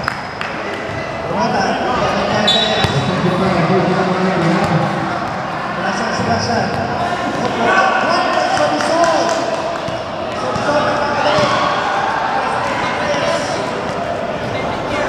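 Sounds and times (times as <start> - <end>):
overlapping voices in a hall: 5.0 - 15.0.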